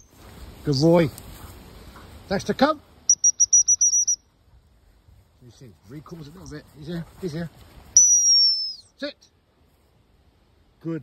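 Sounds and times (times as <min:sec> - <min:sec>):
high training whistle blast: 0:03.1 - 0:04.2, 0:08.0 - 0:08.9.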